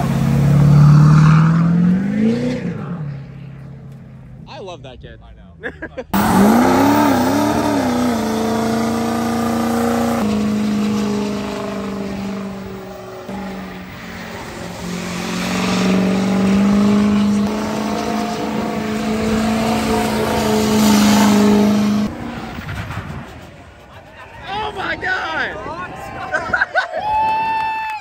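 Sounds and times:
engine revving high: 0.0s - 3.4s, 6.1s - 22.4s.

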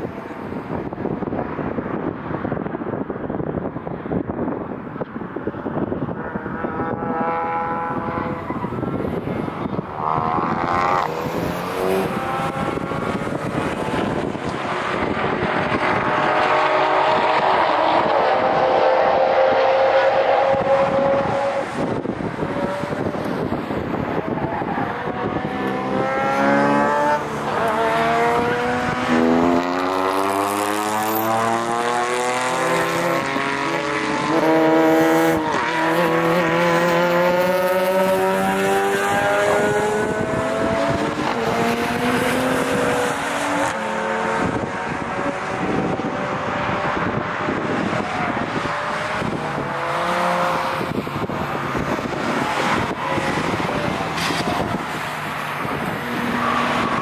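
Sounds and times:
race car engines accelerating: 0.0s - 57.0s.

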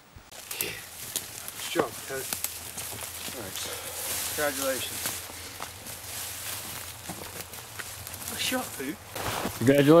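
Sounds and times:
footsteps through dry leaves: 0.3s - 10.0s
sharp crackles and knocks: 0.3s - 10.0s.

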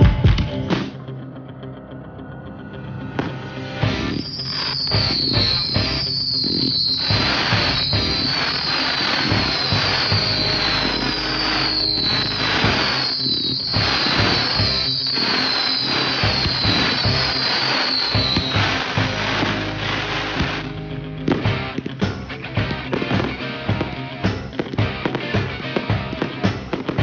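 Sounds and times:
music: 0.0s - 27.0s
fireworks bursts and crackle: 3.2s - 27.0s
high falling whistles: 3.8s - 20.6s.

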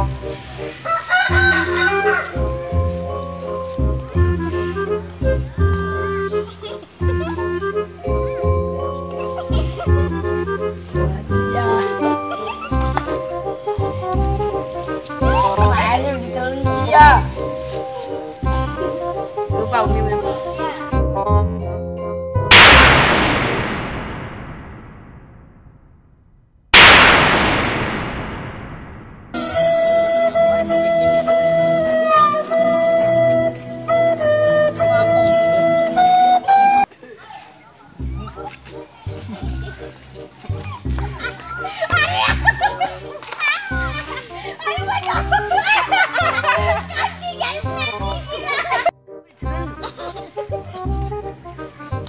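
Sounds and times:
rooster crowing: 0.8s - 2.3s
loud boom blast: 22.5s - 26.1s, 26.8s - 29.4s.

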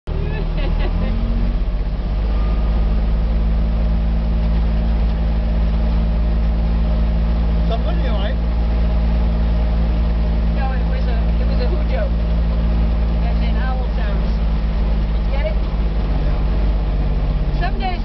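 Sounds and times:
utility vehicle engine running: 0.0s - 18.0s.

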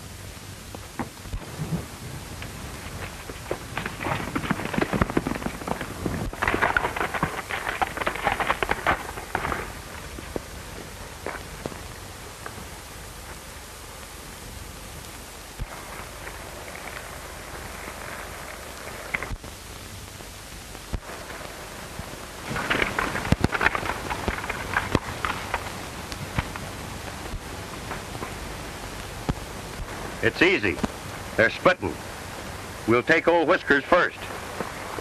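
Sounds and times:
film soundtrack hiss: 0.0s - 35.0s
horse hoofbeats on dry ground: 1.0s - 12.6s, 21.2s - 29.6s.

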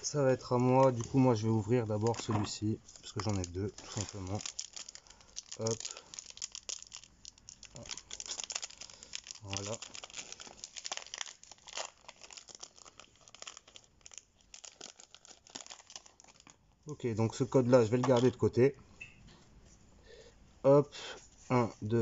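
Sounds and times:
foil wrapper tearing and crinkling: 0.4s - 16.8s.

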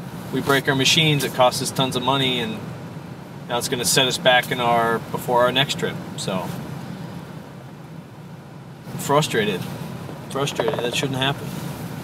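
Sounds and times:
truck engine and road noise hum: 0.0s - 12.0s.

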